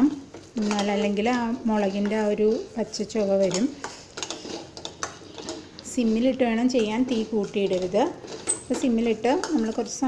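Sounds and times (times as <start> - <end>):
metal spoon scraping pot: 0.0 - 10.0.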